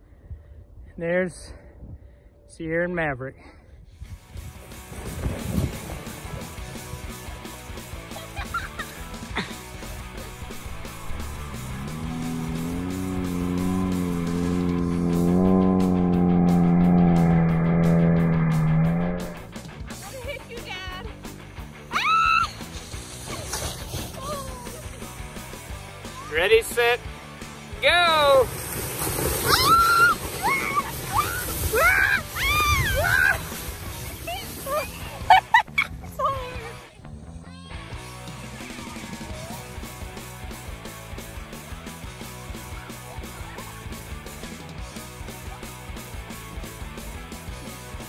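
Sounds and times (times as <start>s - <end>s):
sled hissing on snow: 4.6s - 6.6s, 22.4s - 25.1s, 28.0s - 35.4s
high-pitched shrieks: 29.4s - 33.4s.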